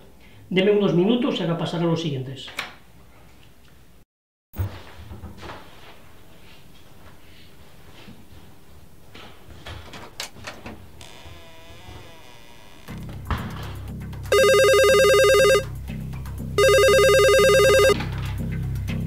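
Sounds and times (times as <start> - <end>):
telephone ringing: 14.3 - 15.7, 16.6 - 18.0.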